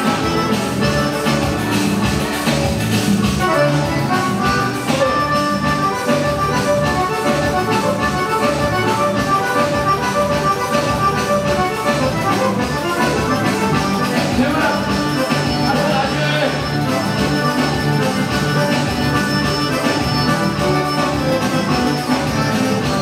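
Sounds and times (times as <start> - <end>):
piano accordion dance music: 0.0 - 23.0.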